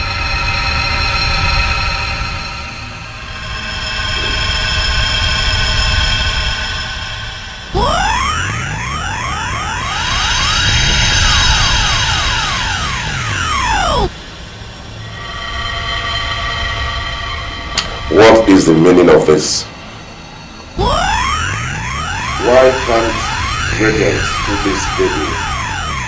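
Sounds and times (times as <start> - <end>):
synthesizer sustained tones: 0.0 - 26.0
electronic sweeping sound effect: 1.8 - 20.1, 20.7 - 26.0.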